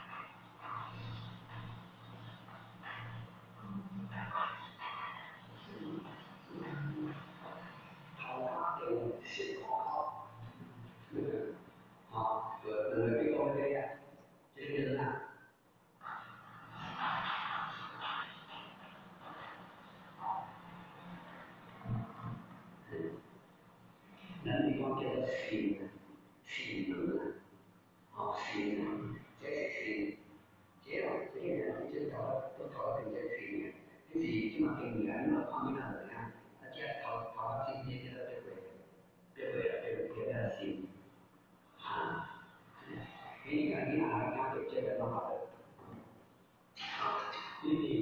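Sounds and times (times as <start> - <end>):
man speaking: 0.0 - 15.4, 19.2 - 23.4, 24.2 - 27.5, 28.2 - 41.1, 41.7 - 46.0, 46.8 - 48.0
recording hum and hiss: 0.0 - 48.0.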